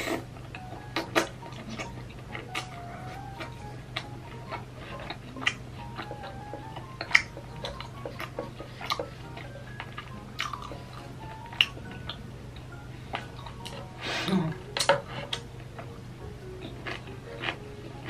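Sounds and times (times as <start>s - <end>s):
chewing crunchy food: 0.2s - 13.9s, 16.6s - 18.0s.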